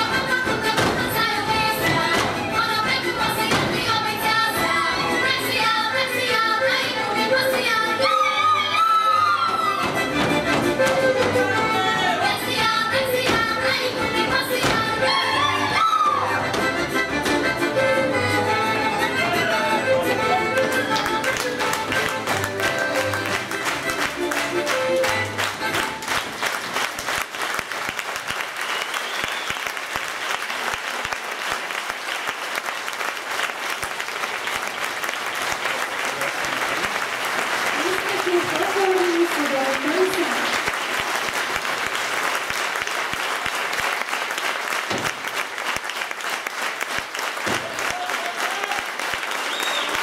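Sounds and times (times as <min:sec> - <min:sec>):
audience applauding: 0:20.4 - 0:50.0.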